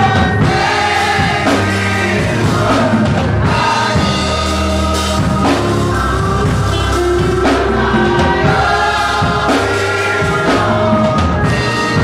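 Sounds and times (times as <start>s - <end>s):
gospel choir singing: 0.0s - 12.0s
sustained low accompaniment: 0.0s - 12.0s.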